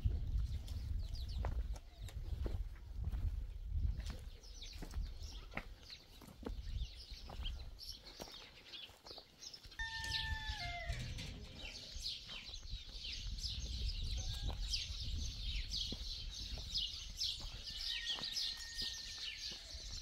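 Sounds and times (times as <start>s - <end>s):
wind rumbling on microphone: 0.0s - 5.6s, 6.4s - 7.7s, 9.8s - 17.7s
small birds chirping: 3.6s - 18.6s
farm animal falling call: 9.8s - 12.1s.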